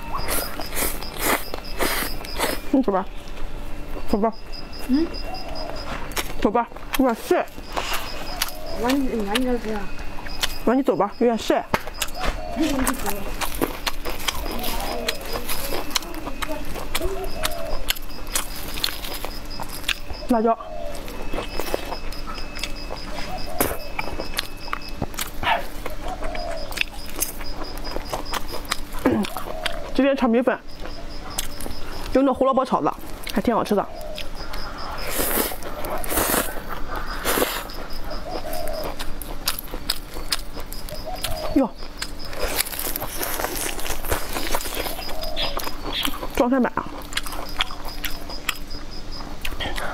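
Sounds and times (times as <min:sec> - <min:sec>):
chewing with wet mouth smacks: 0:05.3 - 0:10.7, 0:11.7 - 0:30.1, 0:30.7 - 0:32.2, 0:32.9 - 0:49.9
mouth clicks while chewing: 0:34.0 - 0:48.8, 0:49.4 - 0:49.9.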